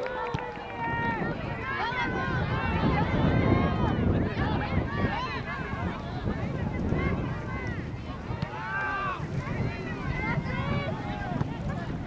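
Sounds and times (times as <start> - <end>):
people calling out: 0.0 - 12.0.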